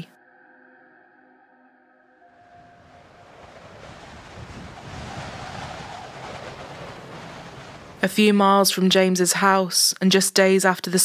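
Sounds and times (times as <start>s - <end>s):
faint music drone: 0.0s - 8.0s
rushing wind noise: 2.4s - 8.5s.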